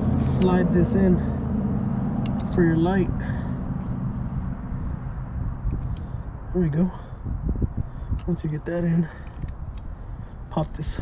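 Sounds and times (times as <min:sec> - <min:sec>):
low rumble: 0:00.0 - 0:08.2.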